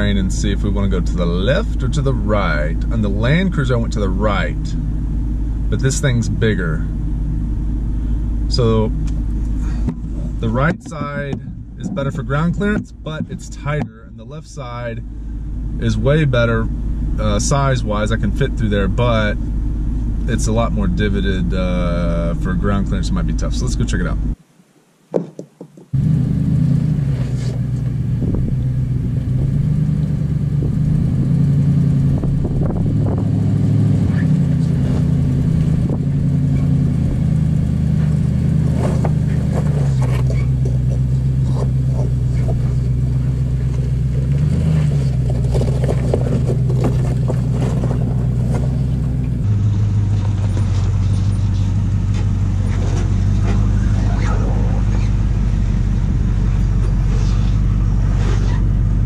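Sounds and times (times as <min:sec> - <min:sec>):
engine running at low revs: 0:00.0 - 0:24.4, 0:25.9 - 0:59.0
tyres crunching over loose stone: 0:38.1 - 0:49.4.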